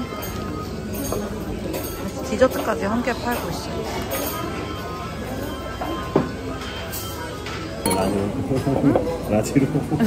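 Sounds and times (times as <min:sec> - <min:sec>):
restaurant background noise: 0:00.0 - 0:10.0
tableware clink: 0:07.9 - 0:09.0.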